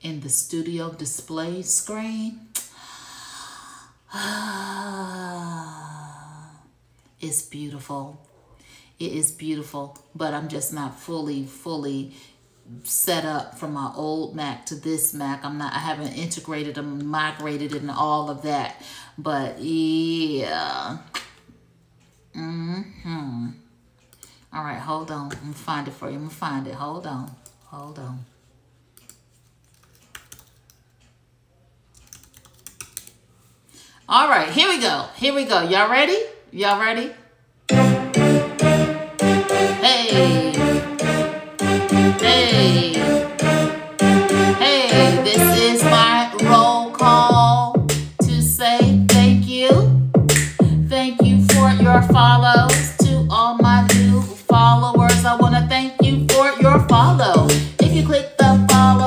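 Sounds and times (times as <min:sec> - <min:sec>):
woman breathing in: 0:02.7 - 0:06.6
woman's wordless admiring vocal: 0:04.1 - 0:06.8
faint computer keyboard typing: 0:28.9 - 0:31.2, 0:31.9 - 0:33.2.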